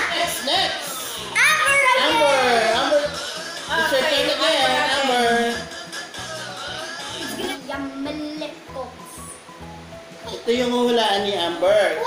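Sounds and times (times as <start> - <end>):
child calling out: 1.4 - 2.6.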